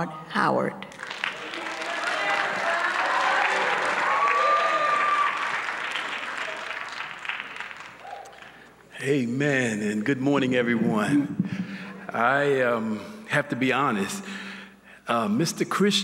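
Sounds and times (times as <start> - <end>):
audience applauding: 0.9 - 8.6.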